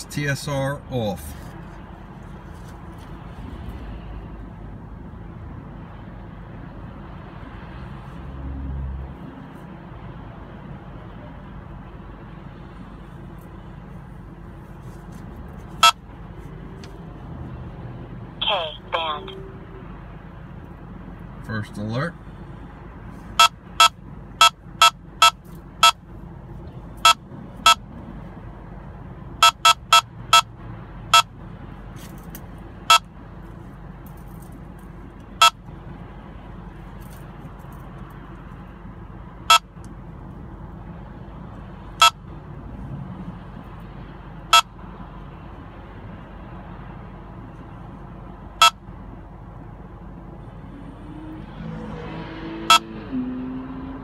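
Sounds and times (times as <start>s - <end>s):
in-car road noise: 0.0s - 54.0s
radar detector beeping: 15.8s - 16.0s, 23.4s - 26.0s, 27.0s - 27.8s, 29.4s - 30.5s, 31.1s - 31.3s, 32.9s - 33.1s, 35.4s - 35.6s, 39.5s - 39.7s, 42.0s - 42.2s, 44.5s - 44.8s, 48.6s - 48.8s, 52.7s - 53.0s.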